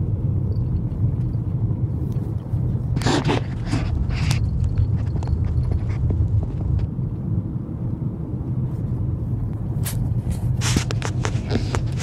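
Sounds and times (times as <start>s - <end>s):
grit clicking under tyres: 0.0s - 8.0s, 9.4s - 12.0s
tyre and road rumble: 0.0s - 12.0s.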